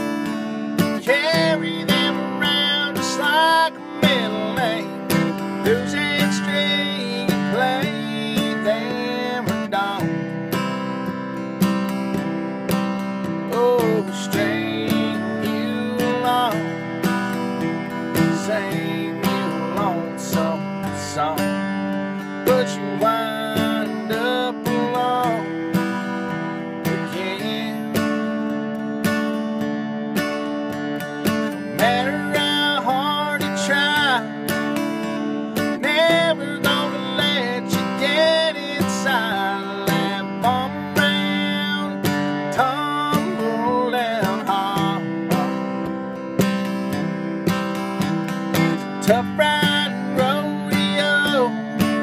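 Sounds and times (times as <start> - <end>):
man singing: 0.0 - 11.0, 11.6 - 29.3, 31.2 - 52.0
acoustic guitar strummed: 0.0 - 52.0.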